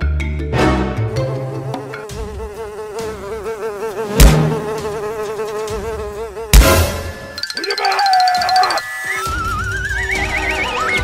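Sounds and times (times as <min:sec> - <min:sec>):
housefly buzzing: 0:01.1 - 0:08.8
loud thumps: 0:04.1 - 0:05.0.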